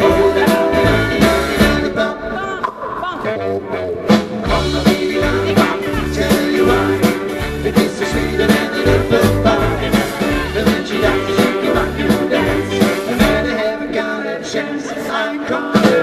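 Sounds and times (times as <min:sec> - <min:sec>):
rock and roll band playing: 0:00.0 - 0:16.0.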